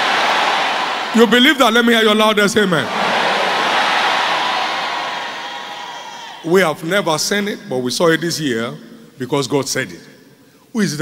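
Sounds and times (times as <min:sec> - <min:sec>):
congregation shouting: 0:00.0 - 0:01.3, 0:02.8 - 0:06.5.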